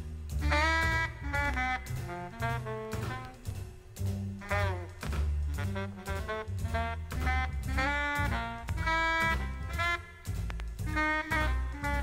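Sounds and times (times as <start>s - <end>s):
bass: 0.0s - 12.0s
drums: 0.0s - 12.0s
saxophone and brass horn section: 0.3s - 12.0s.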